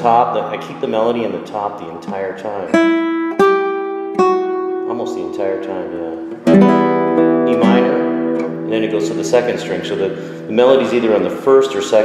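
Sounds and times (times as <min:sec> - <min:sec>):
classical guitar fingerstyle melody: 0:01.9 - 0:11.1.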